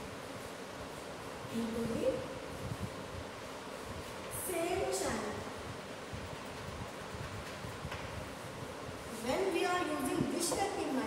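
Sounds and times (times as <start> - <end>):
room hiss over low rumble: 0.0 - 11.0.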